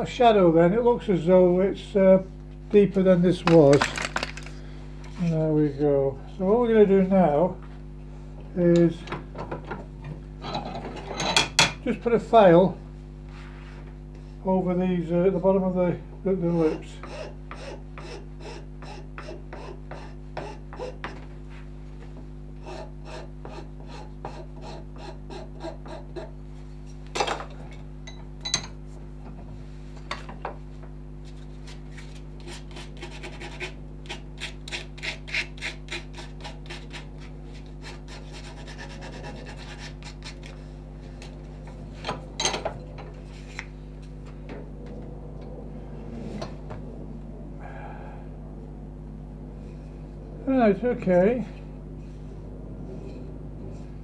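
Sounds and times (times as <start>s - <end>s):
steady low hum: 0.0s - 54.0s
hand file rasping on wood: 16.5s - 21.2s, 22.6s - 26.4s, 32.4s - 40.6s.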